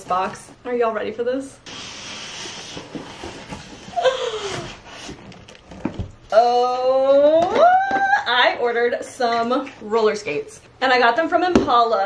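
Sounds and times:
cardboard box rustling and scraping: 1.7s - 6.0s.

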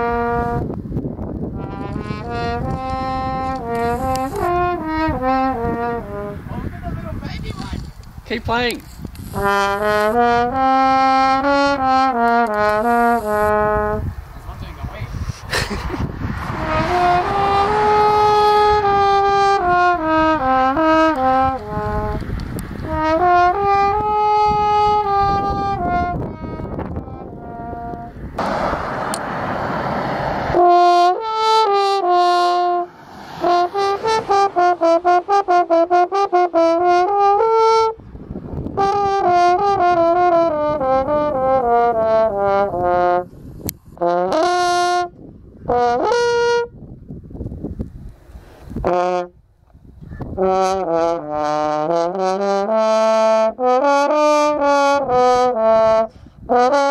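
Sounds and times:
french horn playing: 0.0s - 0.7s, 1.5s - 6.5s, 9.3s - 14.2s, 16.5s - 38.0s, 38.8s - 43.3s, 44.0s - 46.8s, 48.8s - 49.4s, 50.4s - 56.9s
rushing noise: 14.0s - 19.0s, 28.1s - 30.9s, 32.7s - 35.7s.

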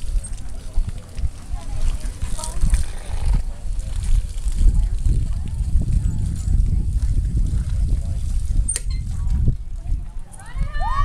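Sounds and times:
faint distant voices: 0.0s - 11.0s
wind buffeting microphone: 0.0s - 11.0s.

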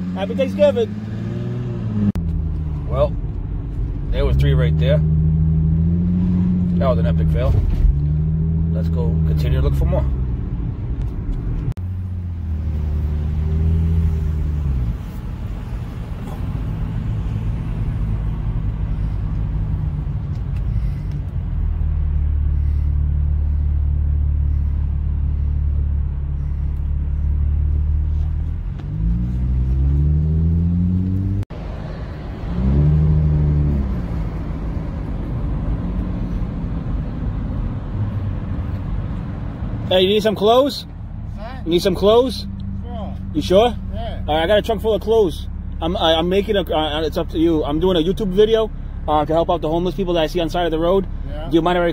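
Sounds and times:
car engine accelerating: 0.0s - 51.9s
road rumble: 0.0s - 51.9s.

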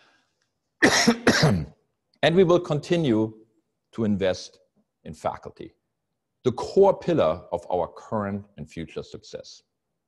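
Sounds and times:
man coughing: 0.8s - 1.7s.

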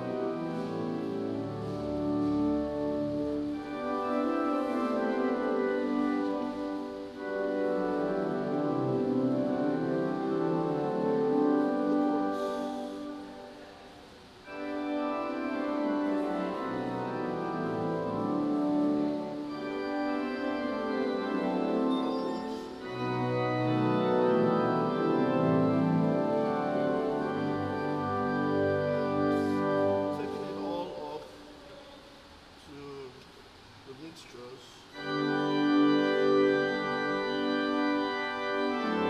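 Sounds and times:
church organ playing chords: 0.0s - 31.8s, 34.9s - 39.0s.

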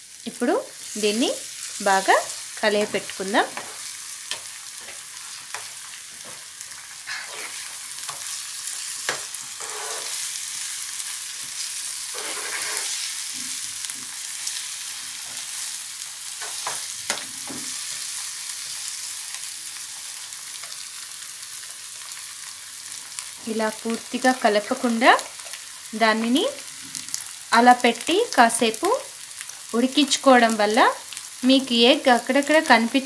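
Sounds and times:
eggs sizzling in frying pan: 0.0s - 33.0s.

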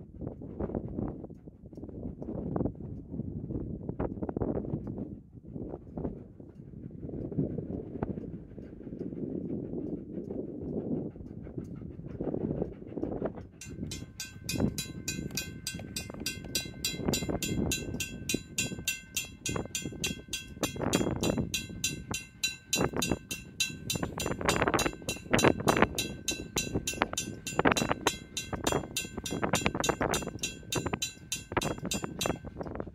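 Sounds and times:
steam train rumble: 5.5s - 32.9s
fast even ringing: 13.6s - 32.6s.

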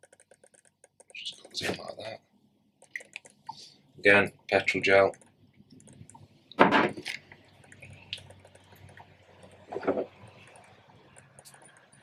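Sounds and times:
light ticks and rubbing: 0.0s - 2.0s, 2.8s - 3.7s, 4.9s - 6.3s, 7.0s - 12.0s.

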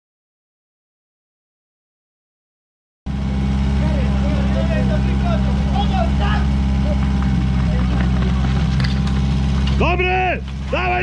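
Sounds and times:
fire pump engine running: 3.1s - 11.0s
voices: 3.1s - 11.0s.

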